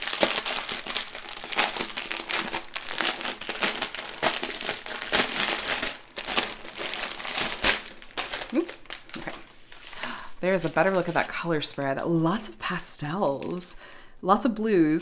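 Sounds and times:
plastic wrapping crinkling: 0.0s - 13.8s.

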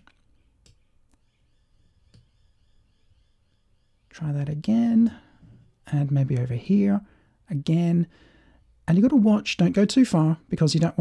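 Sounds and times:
computer mouse clicks: 0.0s - 1.3s, 2.0s - 2.4s.

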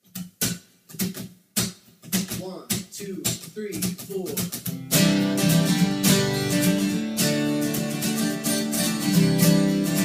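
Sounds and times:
muted guitar strums: 0.0s - 10.0s.

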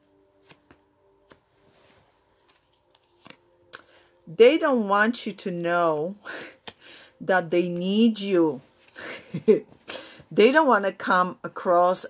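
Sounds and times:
cards tapping on cloth: 0.4s - 1.5s, 2.4s - 3.9s.

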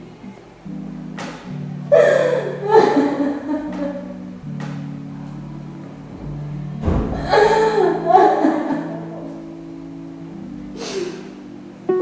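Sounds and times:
soft background music: 0.0s - 12.0s
low thump: 6.1s - 7.6s.

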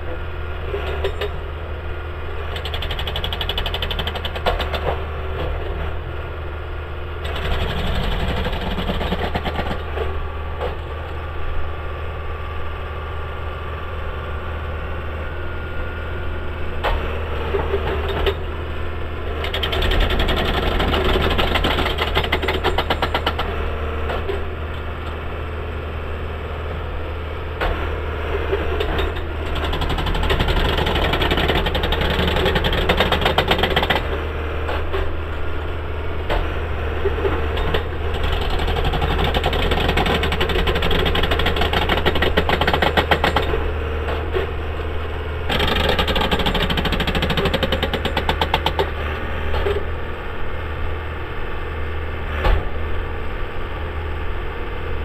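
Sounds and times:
fast mechanical rattling: 2.5s - 4.8s, 7.2s - 9.9s, 19.4s - 23.5s, 29.5s - 34.1s, 38.1s - 43.5s, 45.5s - 48.9s
machine engine running: 36.2s - 51.0s.

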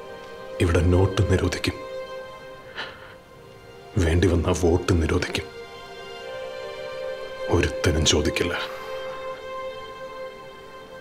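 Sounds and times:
person speaking: 0.6s - 1.9s, 7.5s - 8.8s.

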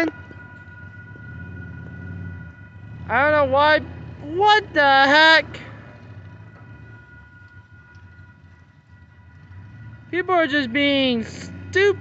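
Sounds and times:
crossing warning bells ringing: 0.0s - 12.0s
low rumble: 0.0s - 12.0s.

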